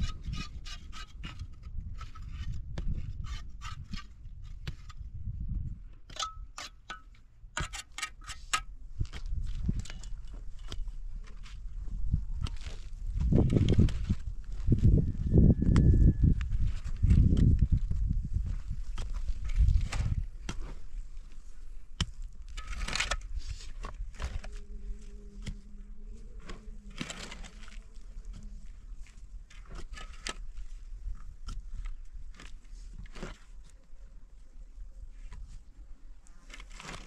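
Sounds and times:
digging tools scraping stony soil: 0.0 - 37.0.

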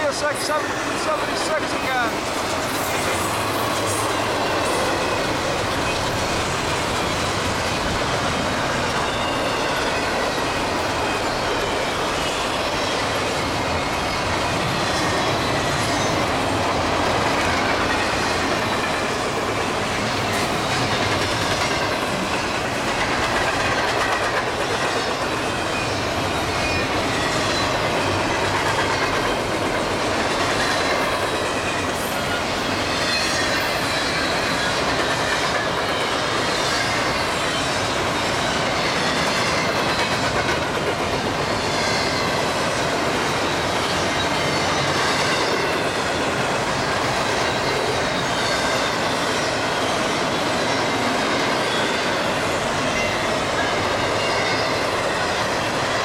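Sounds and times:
steel wheels on rail: 0.0 - 56.0
high wheel squeal: 8.8 - 16.2, 41.4 - 42.5.

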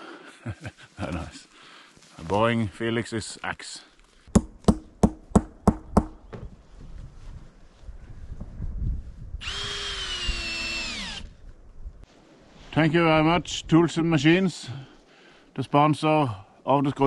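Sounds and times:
axe knocking: 4.3 - 6.4
cordless drill whining: 9.4 - 11.3.

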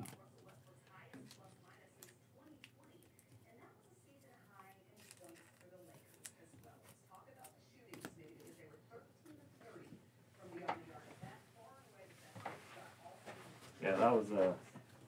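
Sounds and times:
faint background speech: 0.0 - 15.0.

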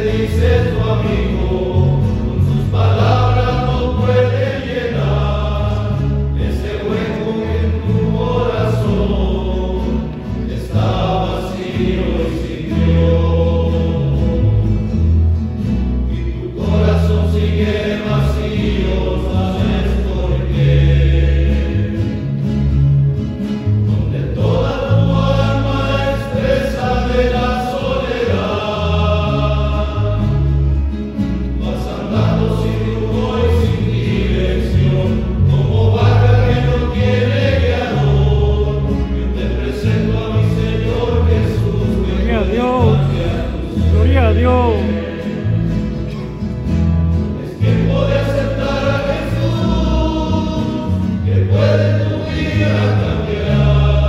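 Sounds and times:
low bass notes: 0.0 - 54.0
men's choir singing a hymn: 0.0 - 54.0.

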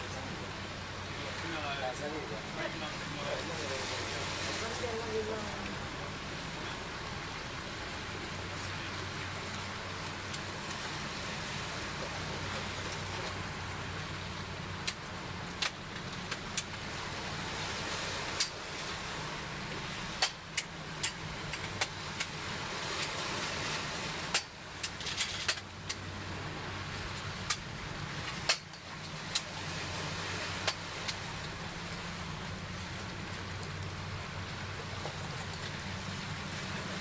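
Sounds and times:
low machinery hum: 0.0 - 37.0.

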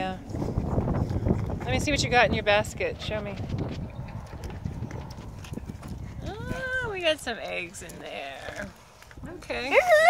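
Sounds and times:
wind rumble on microphone: 0.0 - 10.0.

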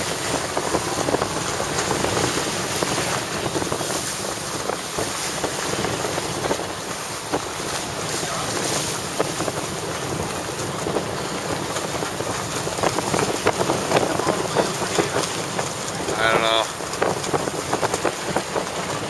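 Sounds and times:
wind rushing across microphone: 0.0 - 19.0.

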